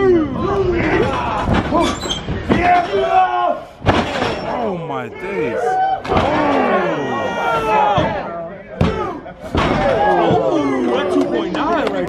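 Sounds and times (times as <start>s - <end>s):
spectators shouting: 4.3s - 12.0s.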